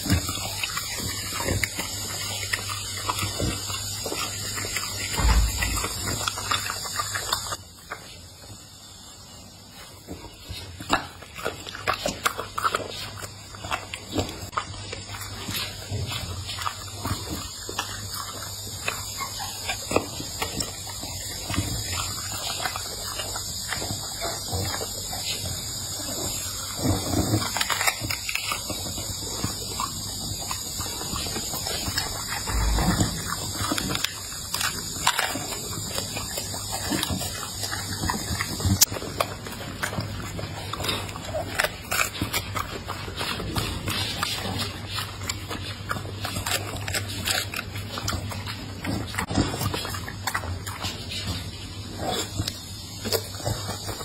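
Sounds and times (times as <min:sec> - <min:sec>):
dog chewing and slurping: 0:00.0 - 0:54.0.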